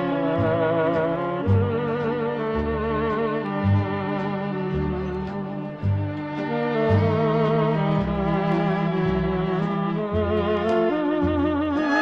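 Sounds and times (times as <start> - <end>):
dance orchestra playing slowly: 11.6 - 12.0.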